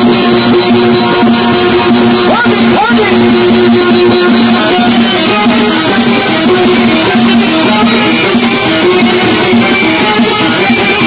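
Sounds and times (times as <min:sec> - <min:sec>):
amplified live band music: 0:00.0 - 0:11.0
string instrument melody: 0:00.0 - 0:11.0.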